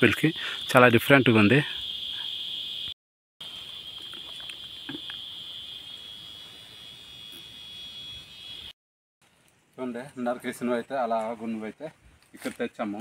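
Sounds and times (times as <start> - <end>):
insects chirring: 0.0 - 8.8.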